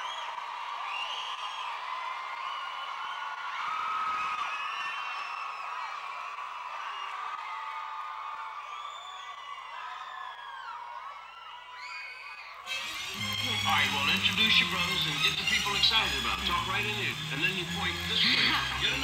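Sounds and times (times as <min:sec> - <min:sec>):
high-pitched whoops and screams: 0:00.0 - 0:13.4
audience cheering: 0:00.0 - 0:19.0.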